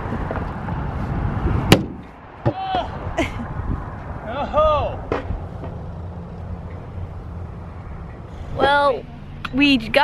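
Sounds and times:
wind rumble on microphone: 0.0s - 2.1s, 2.9s - 5.6s
person exclaiming: 2.5s - 3.0s.

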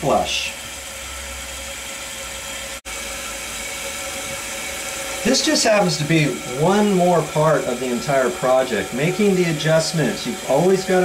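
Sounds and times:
toilet tank fill valve hissing: 0.0s - 11.0s
water running into tank: 0.0s - 11.0s.

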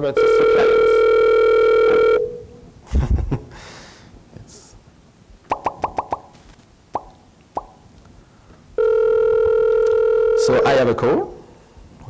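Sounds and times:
telephone call tone: 0.1s - 2.5s, 8.8s - 11.0s.

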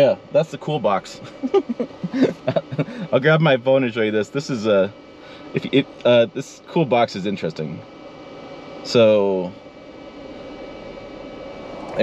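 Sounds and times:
cooling fan whirring: 0.0s - 12.0s.

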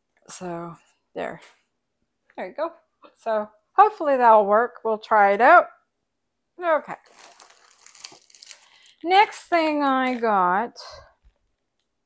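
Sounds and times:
plastic packaging crinkling: 6.9s - 9.4s.

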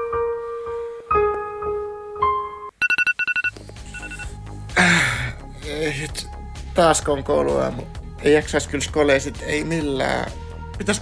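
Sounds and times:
phone alarm beeping: 2.8s - 4.3s.

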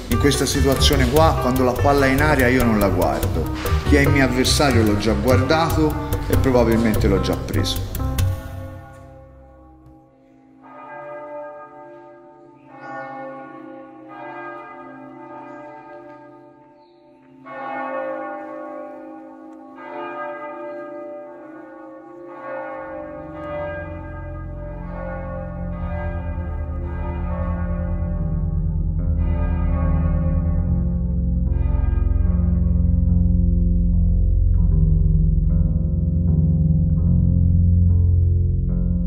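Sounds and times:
bells ringing: 0.0s - 8.0s, 8.7s - 28.6s.

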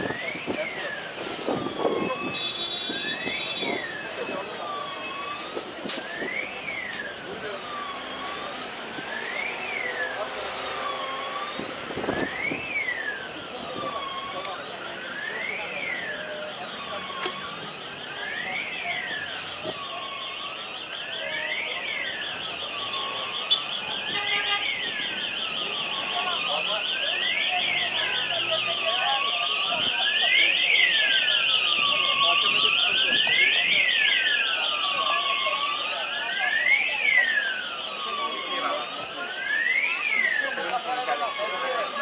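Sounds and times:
fast warbling siren tone: 0.0s - 42.0s
siren wailing: 0.0s - 42.0s.

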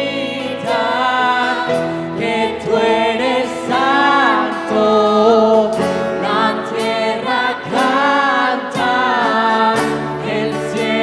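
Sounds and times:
band guitars and keyboard: 0.0s - 11.0s
group singing worship song: 0.0s - 11.0s.

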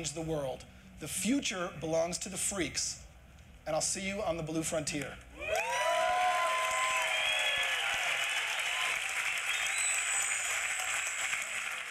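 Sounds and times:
audience applauding: 5.4s - 11.9s
cheers: 5.4s - 11.9s.

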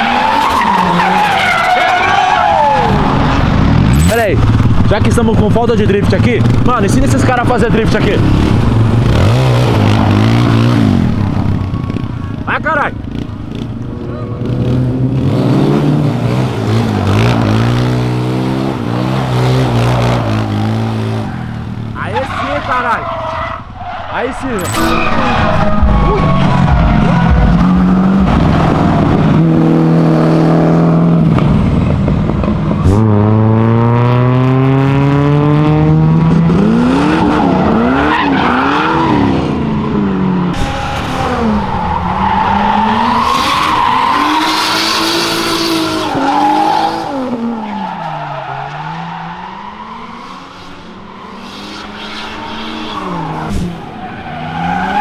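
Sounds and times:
tyres squealing and skidding: 0.0s - 5.0s, 5.7s - 12.8s, 16.1s - 29.8s, 36.6s - 55.0s
engines revving hard: 0.0s - 55.0s.

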